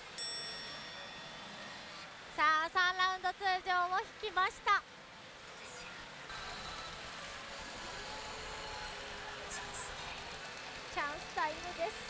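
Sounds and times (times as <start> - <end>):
steady background noise: 0.0 - 12.0
pachinko machine chime: 0.2 - 1.9.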